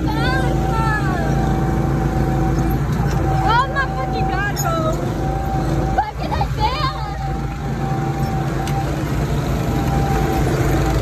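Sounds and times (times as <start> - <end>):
go-kart engine running: 0.0 - 11.0
voices shouting and whooping: 0.0 - 11.0.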